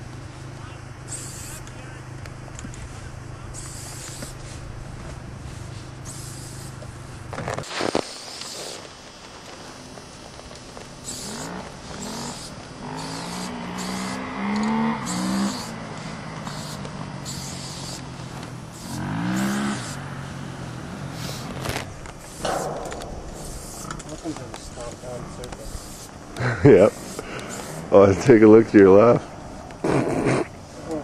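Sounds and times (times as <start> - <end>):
spray paint can hissing: 1.1 - 1.7, 3.5 - 4.5, 6.0 - 6.9, 7.6 - 9.7, 11.0 - 18.1, 18.7 - 20.0, 21.1 - 28.2.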